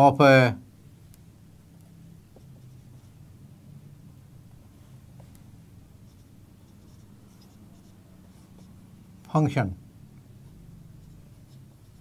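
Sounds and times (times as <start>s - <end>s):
marker scratching on whiteboard: 2.3s - 3.3s, 4.5s - 9.0s, 10.4s - 12.0s.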